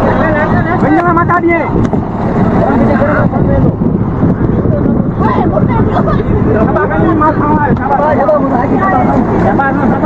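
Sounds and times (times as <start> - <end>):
boat engine rumbling: 0.0 - 10.0.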